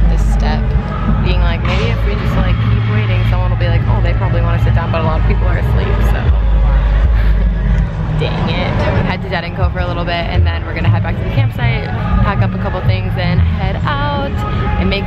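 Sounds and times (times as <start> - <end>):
woman talking: 0.0 - 6.3, 8.2 - 15.0
distant bass-heavy music: 0.0 - 15.0.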